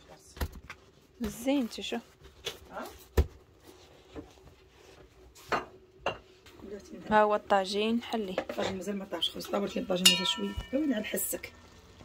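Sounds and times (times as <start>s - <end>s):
kitchenware clinking: 8.2s - 11.4s.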